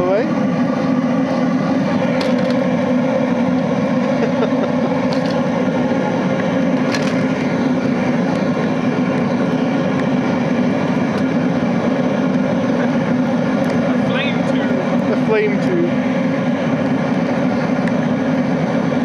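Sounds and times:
oil burner flame blasting: 0.0s - 19.0s
sharp cracks from burning plastic: 2.1s - 2.8s, 5.0s - 5.7s, 6.4s - 7.5s.

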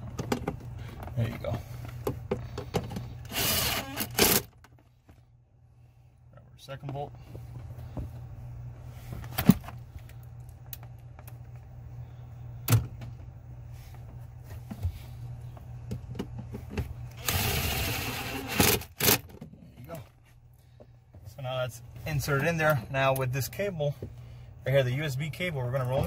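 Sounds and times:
steady low hum: 0.0s - 26.0s
cordless power driver running: 2.9s - 4.5s, 17.1s - 19.3s.

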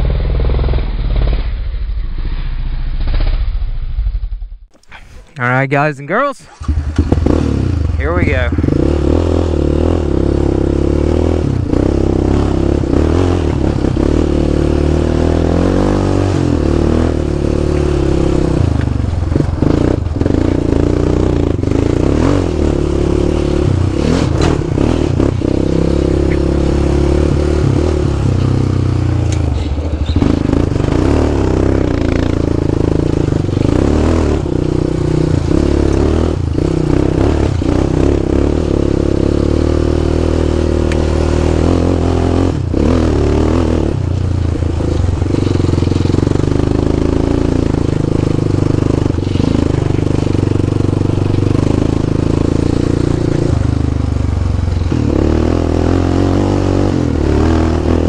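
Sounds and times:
quad bike engine running: 0.0s - 1.5s, 6.4s - 58.0s.

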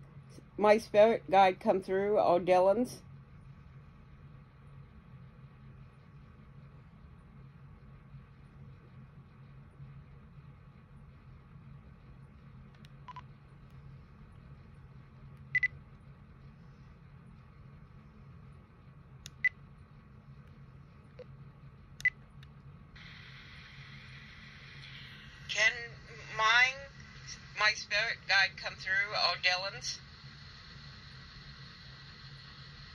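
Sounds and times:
faint steady hum: 0.0s - 32.9s.

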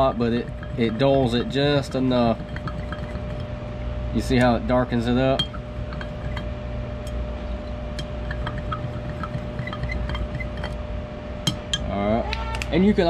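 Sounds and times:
spoon stirring liquid: 0.0s - 3.6s, 5.4s - 6.5s, 8.0s - 10.8s
steady low hum: 0.0s - 13.0s
spoon clinking against glass: 0.5s - 3.5s, 5.4s - 6.4s, 8.0s - 10.8s.

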